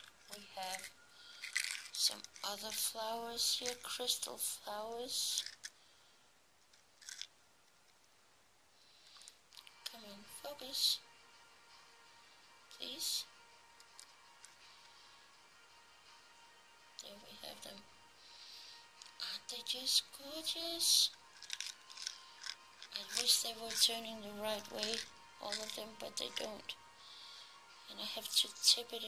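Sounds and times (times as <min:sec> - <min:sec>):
plastic packet crackle: 0:00.0 - 0:04.3, 0:06.7 - 0:07.3, 0:21.2 - 0:26.6
beads rattling in plastic case: 0:00.0 - 0:05.8, 0:06.7 - 0:07.3, 0:21.2 - 0:26.8.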